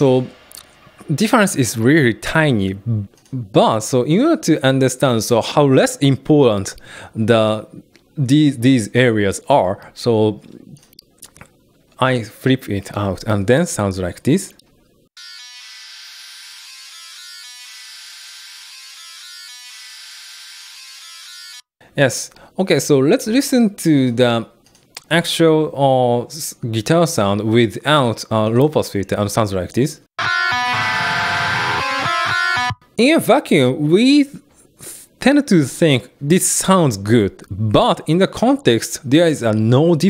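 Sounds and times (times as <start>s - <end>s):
thin distorted guitar sizzle: 30.2s - 32.8s.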